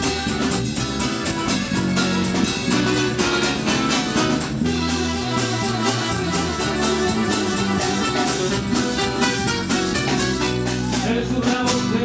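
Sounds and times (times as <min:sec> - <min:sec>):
piano accordion notes: 0:00.0 - 0:10.8
acoustic guitars strummed and plucked: 0:00.0 - 0:12.0
bass line: 0:00.0 - 0:12.0.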